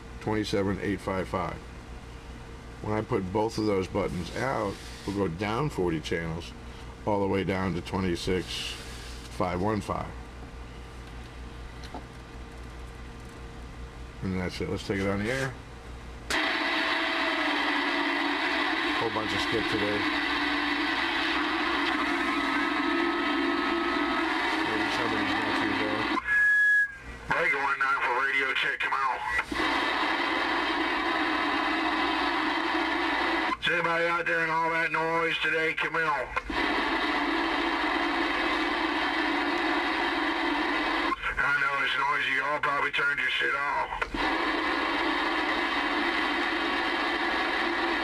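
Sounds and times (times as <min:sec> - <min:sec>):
radio static: 0:16.3 - 0:26.4, 0:27.3 - 0:48.0.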